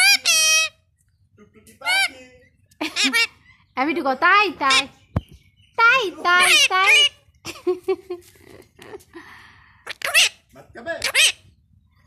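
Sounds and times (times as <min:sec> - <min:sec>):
parakeet calling: 0:00.0 - 0:00.9, 0:01.8 - 0:07.4, 0:09.8 - 0:11.7.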